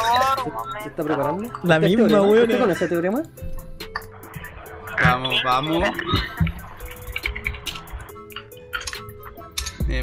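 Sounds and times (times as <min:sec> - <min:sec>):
ticking clicks beat: 0:00.4 - 0:10.0.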